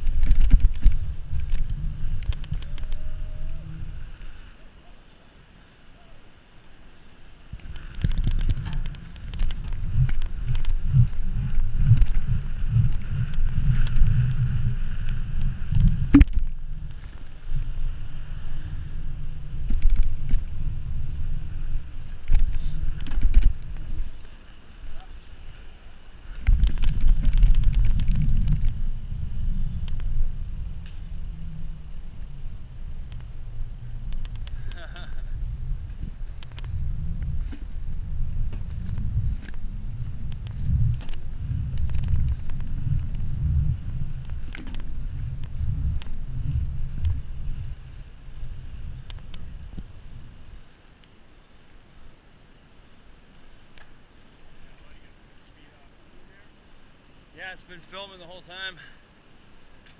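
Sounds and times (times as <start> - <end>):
bike knocks and rattles: 0.0 - 3.0
wind buffeting microphone: 0.0 - 4.4, 7.4 - 50.7.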